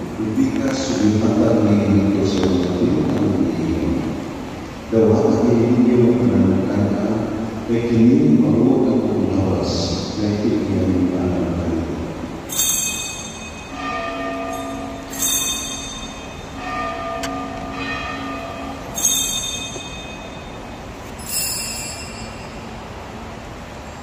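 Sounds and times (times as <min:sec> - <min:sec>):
small bells jingling: 0:12.5 - 0:22.9.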